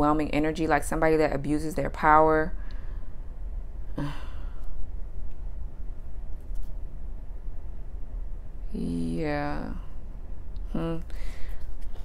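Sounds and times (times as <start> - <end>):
woman sighing: 3.9 - 4.7.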